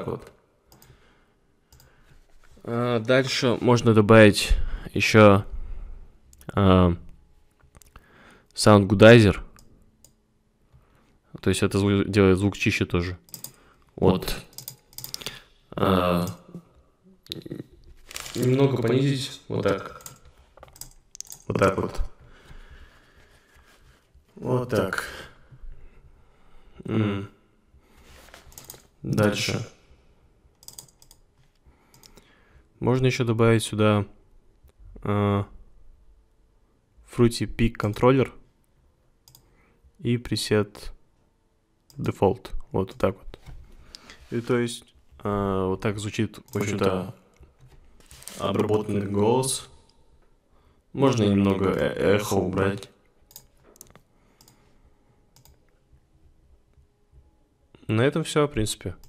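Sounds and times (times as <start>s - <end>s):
man speaking: 2.6s - 5.5s, 14.0s - 14.5s, 15.7s - 16.7s, 17.3s - 20.0s, 21.5s - 22.2s, 24.4s - 25.4s, 29.0s - 29.8s, 37.1s - 38.4s, 44.3s - 47.2s, 48.3s - 49.8s, 51.0s - 53.0s, 57.8s - 59.0s
faint computer mouse clicks: 31.9s - 32.3s, 39.2s - 39.5s, 53.3s - 54.6s.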